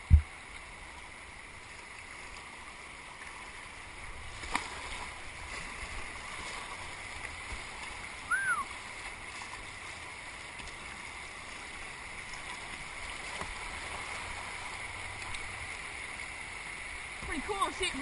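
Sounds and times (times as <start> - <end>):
fast-moving water rushing: 1.6 - 18.0.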